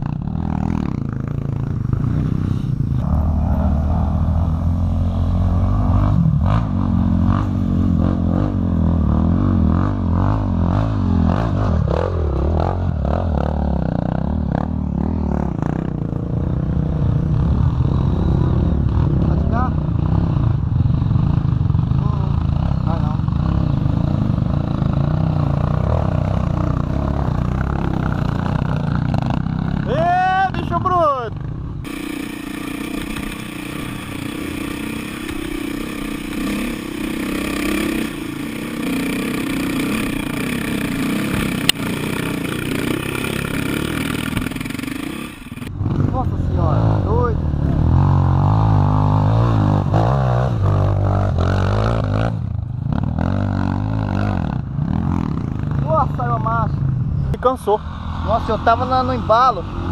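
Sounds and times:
distant trail bikes: 0.0s - 59.9s
motorcycle engine running nearby: 0.0s - 59.9s
dirt bike engine climbing under load: 31.9s - 45.7s.

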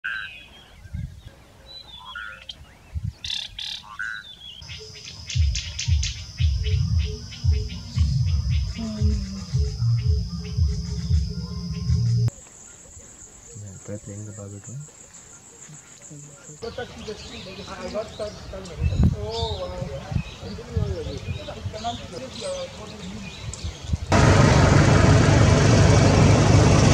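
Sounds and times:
chirping bird calls: 0.1s - 24.1s
high-pitched insect drone: 4.6s - 12.3s
loud low thumps: 5.3s - 12.3s.

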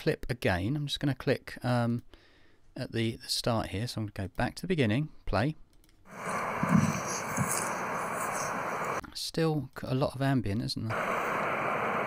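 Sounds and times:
road traffic: 6.1s - 9.0s
wind: 6.1s - 9.0s.

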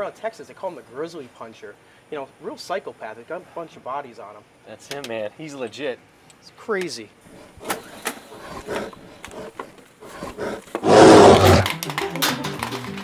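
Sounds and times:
growling roar: 8.3s - 11.7s.

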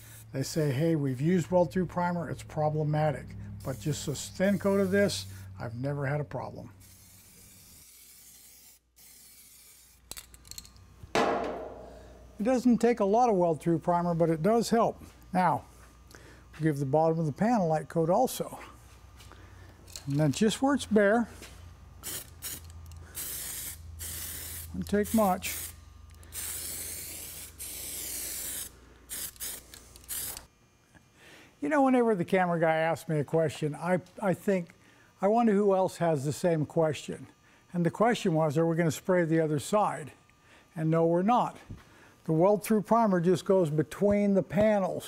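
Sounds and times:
aerosol can spraying: 3.6s - 5.3s, 6.8s - 10.3s, 22.0s - 30.5s.

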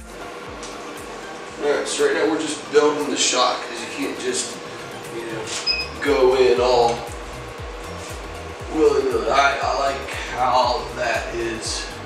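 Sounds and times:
steady low beat: 0.0s - 12.0s.

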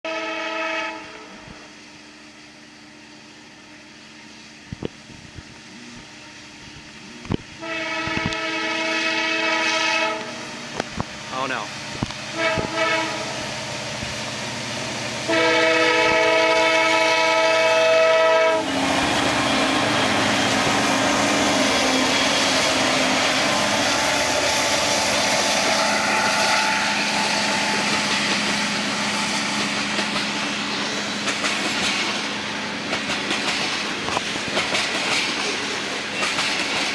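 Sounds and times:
locomotive air horn blast: 0.1s - 1.5s, 7.6s - 10.5s, 12.3s - 13.5s, 15.2s - 28.0s
freight train rumbling past: 0.1s - 36.9s
wheels clicking over rail joints: 29.5s - 36.9s.

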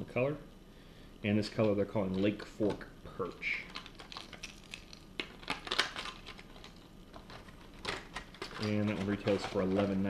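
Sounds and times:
plastic packaging crinkling: 1.6s - 10.0s.

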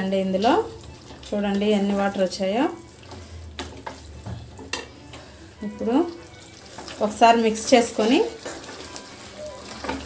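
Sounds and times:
curry sizzling in a metal pan: 0.0s - 10.0s
spatula stirring: 0.1s - 10.0s.

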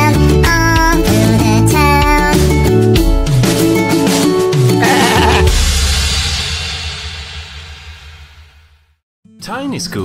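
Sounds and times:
children's song music: 0.0s - 6.2s.

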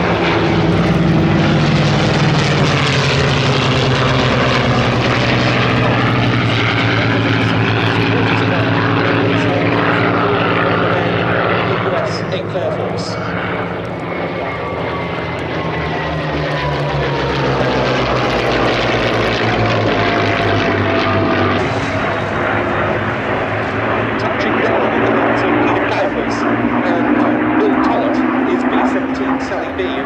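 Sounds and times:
piston aircraft engines droning: 0.0s - 30.0s.

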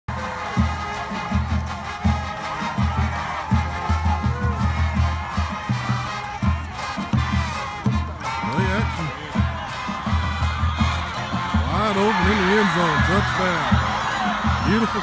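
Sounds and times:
murmur of stadium crowd: 0.1s - 15.0s.

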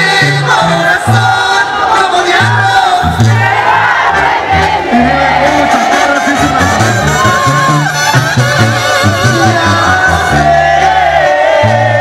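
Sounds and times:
crowd shouting and cheering: 0.0s - 12.0s
live banda music: 0.0s - 12.0s.

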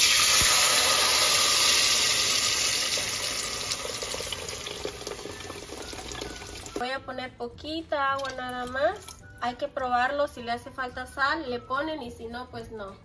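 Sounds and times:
sauce sizzling in hot fat: 0.0s - 6.8s.

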